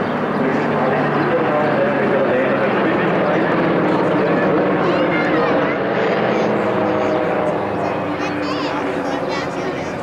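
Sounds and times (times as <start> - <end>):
faint voices: 0.0 - 10.0
propeller plane engine droning: 0.0 - 10.0.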